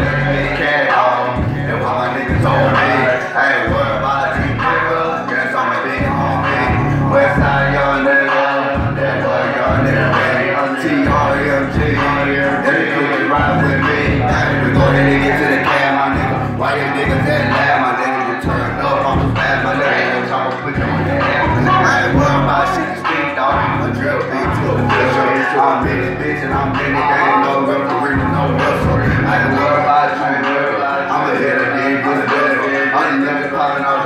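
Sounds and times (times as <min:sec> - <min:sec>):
heavy bass backing track: 0:00.0 - 0:34.0
man rapping into microphone: 0:00.0 - 0:34.0.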